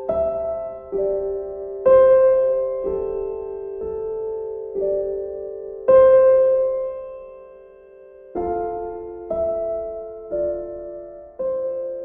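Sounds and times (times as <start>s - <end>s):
soft piano chord ringing: 0.0s - 12.0s.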